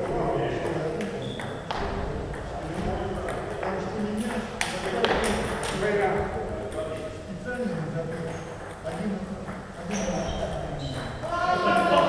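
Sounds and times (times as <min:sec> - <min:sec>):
table tennis balls clicking: 0:00.0 - 0:12.0.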